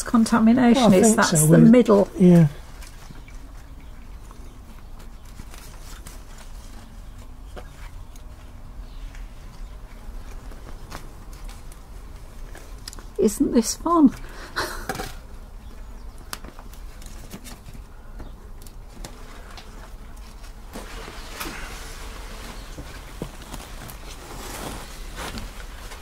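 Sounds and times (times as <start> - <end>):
person laughing: 14.6 - 14.9
plastic film rustling: 18.7 - 26.0.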